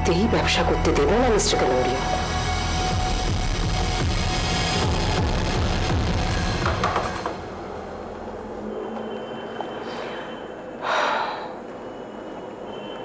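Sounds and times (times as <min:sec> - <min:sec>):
faint high whine: 0:07.5 - 0:13.0
woman sighing: 0:10.8 - 0:11.6.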